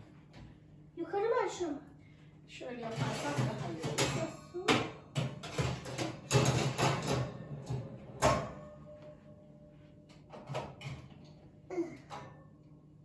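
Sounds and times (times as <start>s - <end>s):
baking tin clattering on oven rack: 2.8s - 8.5s.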